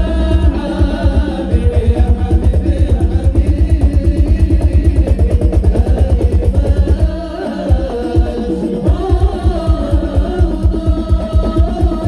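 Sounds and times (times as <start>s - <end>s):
fast deep drum strokes: 0.0s - 12.0s
people singing: 0.0s - 12.0s.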